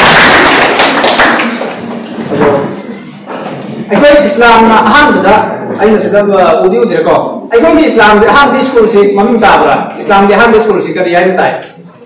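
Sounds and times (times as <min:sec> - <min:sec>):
audience applauding: 0:00.0 - 0:02.0.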